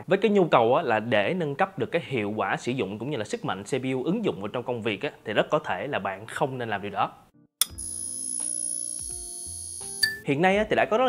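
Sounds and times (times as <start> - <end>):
high ringing tone: 7.6 - 10.2.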